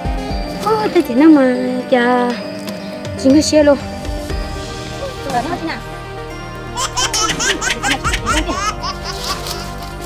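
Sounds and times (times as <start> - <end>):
background music: 0.0 - 10.0
high-pitched laughter: 6.8 - 9.7.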